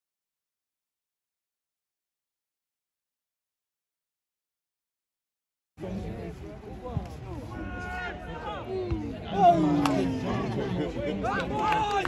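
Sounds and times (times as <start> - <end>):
people calling out and talking: 5.8 - 12.0.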